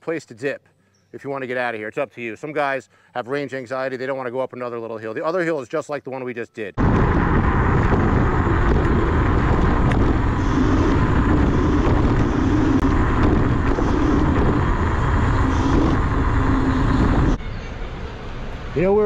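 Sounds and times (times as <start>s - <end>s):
wind roar on microphone: 6.8s - 17.5s
faint steady hum: 7.3s - 17.4s.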